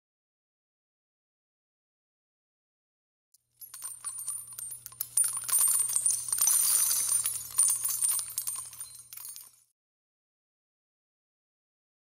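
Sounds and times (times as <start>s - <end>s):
jingling metallic shimmer: 3.6s - 9.7s.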